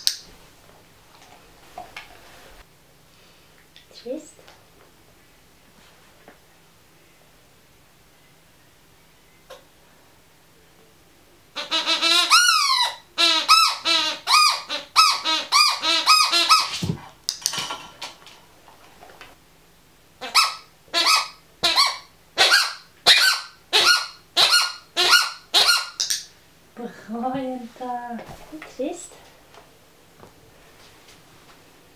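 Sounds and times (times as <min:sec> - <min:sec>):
rubber squeaky ball squeaking: 0:11.6 - 0:16.9, 0:20.2 - 0:26.2.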